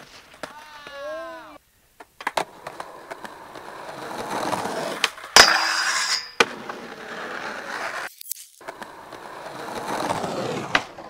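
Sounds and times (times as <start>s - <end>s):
skateboard wheels rolling on concrete: 0.0s - 11.0s
skateboard wheels slapping ground: 0.0s - 11.0s
skateboard clanking on steel rail: 5.0s - 6.6s
metallic grinding scrape: 5.4s - 6.4s
skateboard pop: 7.6s - 11.0s.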